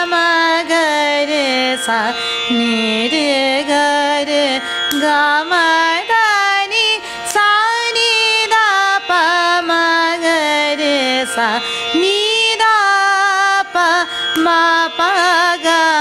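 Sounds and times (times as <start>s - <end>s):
woman singing: 0.0s - 16.0s.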